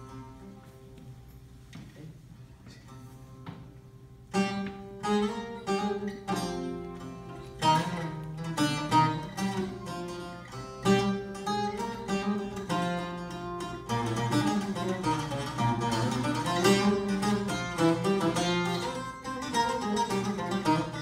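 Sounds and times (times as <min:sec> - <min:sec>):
lutes strummed and plucked: 0:02.7 - 0:21.0.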